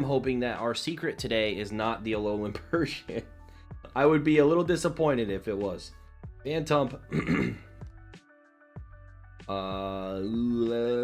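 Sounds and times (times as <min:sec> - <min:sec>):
quiet background music: 0:00.0 - 0:11.0
man clearing throat: 0:07.1 - 0:07.7.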